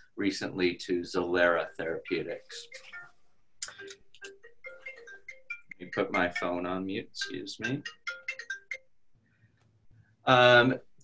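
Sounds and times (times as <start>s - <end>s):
mobile phone ringtone: 2.1s - 9.0s.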